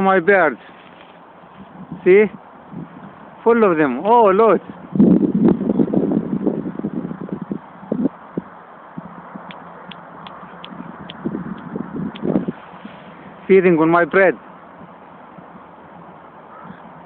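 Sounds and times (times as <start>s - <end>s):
faint short high bird calls: 16.5s - 17.0s.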